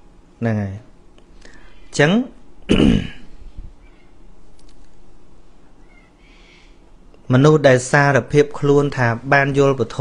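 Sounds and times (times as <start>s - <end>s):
man clearing his throat: 2.7s - 3.3s.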